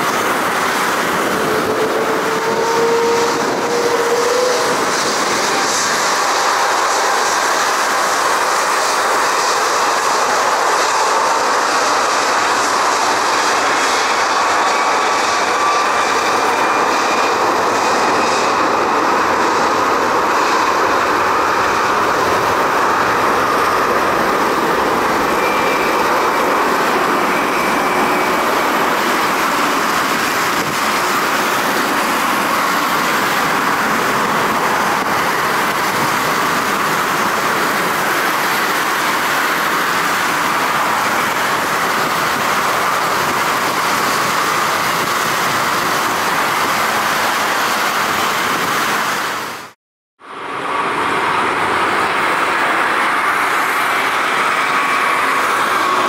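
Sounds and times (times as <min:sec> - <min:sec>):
jet engines roaring: 0:00.0 - 0:56.0.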